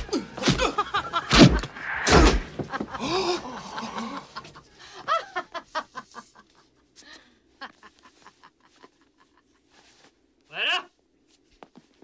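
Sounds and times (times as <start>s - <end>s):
woman laughing and gasping: 2.8s - 6.1s.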